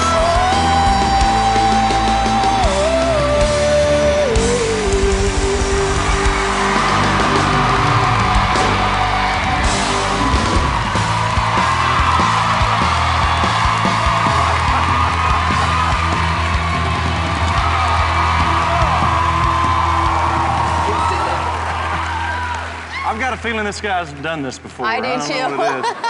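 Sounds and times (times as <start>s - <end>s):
electric guitar: 0.0s - 23.0s
audience yelling and whooping: 0.0s - 23.4s.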